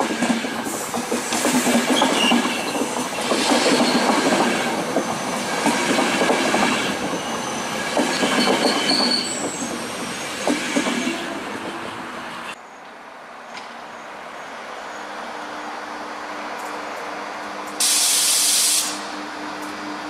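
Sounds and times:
train wheels clattering over rail joints: 0.0s - 11.8s
high-pitched wheel squeals: 7.1s - 9.7s.

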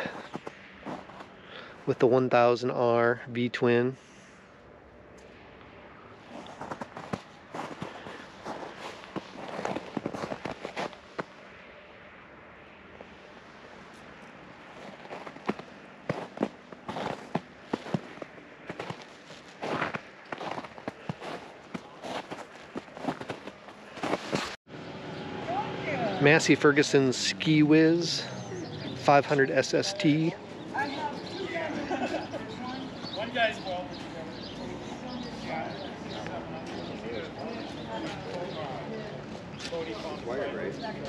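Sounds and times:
footsteps crunching on snow: 0.0s - 1.4s, 6.2s - 11.4s, 13.8s - 24.6s.

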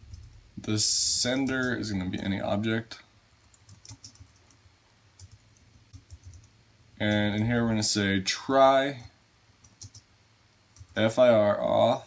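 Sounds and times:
faint keyboard typing: 0.0s - 2.3s, 3.4s - 7.6s, 9.6s - 10.1s, 10.7s - 11.1s.

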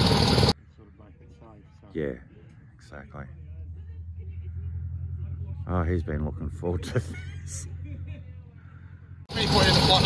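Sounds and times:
light plane engine running: 0.0s - 0.6s, 3.5s - 10.0s.

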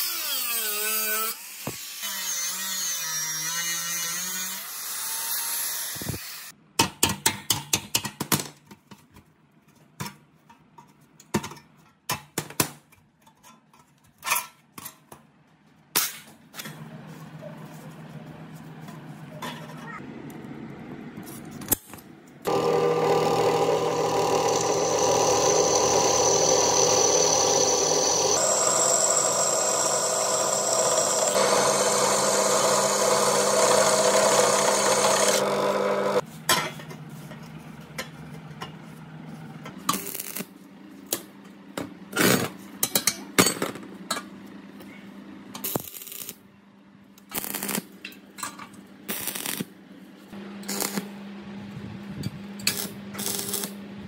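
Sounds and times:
angle grinder cutting steel: 0.0s - 6.5s, 22.5s - 36.2s.

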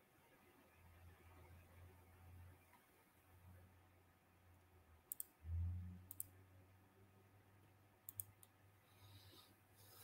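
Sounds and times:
computer mouse clicks: 5.1s - 5.4s, 6.1s - 6.3s, 8.1s - 8.6s.

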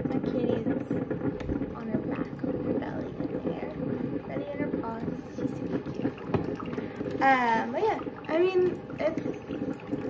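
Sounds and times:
coffee machine droning: 0.0s - 10.0s.

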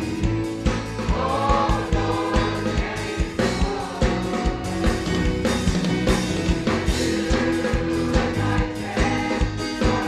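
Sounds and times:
drums: 0.0s - 10.0s
choir singing: 1.0s - 5.1s, 6.9s - 10.0s.

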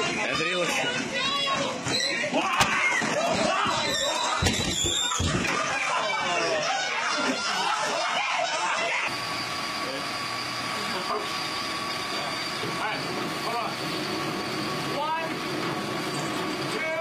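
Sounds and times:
people yelling and laughing: 0.0s - 9.4s, 10.7s - 11.5s
steady hum with high whine: 9.1s - 17.0s.

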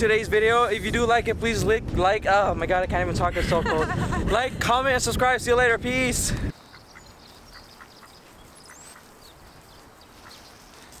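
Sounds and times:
steady outdoor hiss: 0.0s - 11.0s
ducks quacking faintly: 6.5s - 11.0s.

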